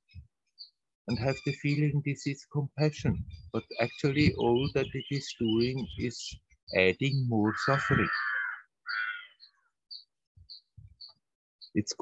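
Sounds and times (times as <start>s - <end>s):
crow cawing: 7.4s - 9.7s.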